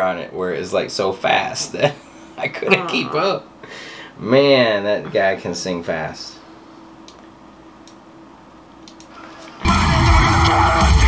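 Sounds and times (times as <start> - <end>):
steady low hum: 0.0 - 9.6
faint short clicks: 8.8 - 9.2.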